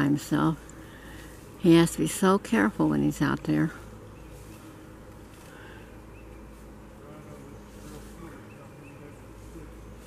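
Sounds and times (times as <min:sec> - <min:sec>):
insects buzzing: 0:00.0 - 0:10.0
steady low hum: 0:00.0 - 0:10.0.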